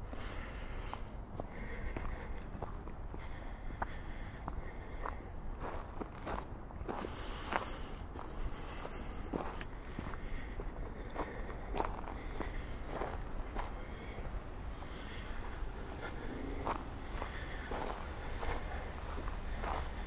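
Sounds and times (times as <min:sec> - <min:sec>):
footsteps on dirt trail: 0:00.1 - 0:20.0.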